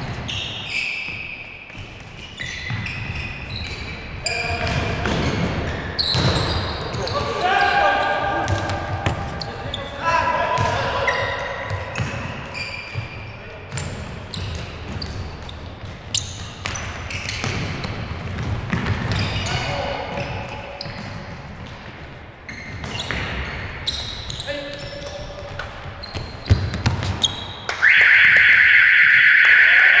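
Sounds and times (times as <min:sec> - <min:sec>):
players shouting: 0:07.0 - 0:11.6, 0:28.7 - 0:30.0
ball kicked and bouncing: 0:12.9 - 0:19.4, 0:25.4 - 0:27.4
loud harsh buzzer: 0:27.8 - 0:30.0.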